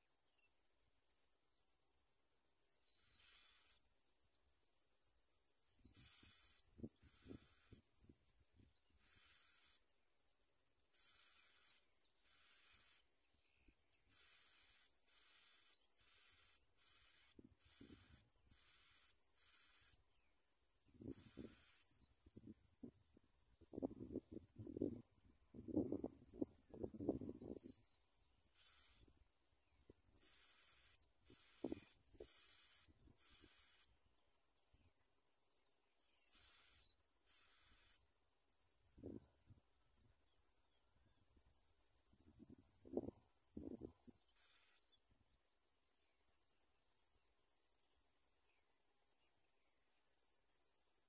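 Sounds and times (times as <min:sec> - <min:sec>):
nestlings' hissing begging calls: 0:05.9 - 0:07.8, 0:09.0 - 0:09.8, 0:11.0 - 0:13.0, 0:14.1 - 0:20.0, 0:21.0 - 0:22.0, 0:28.6 - 0:29.0, 0:30.2 - 0:33.9, 0:36.3 - 0:38.0, 0:44.3 - 0:44.8.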